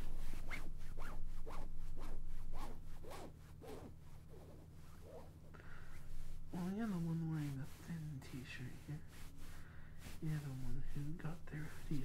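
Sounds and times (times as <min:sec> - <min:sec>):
jacket zipper being pulled: 0:00.3 - 0:05.4.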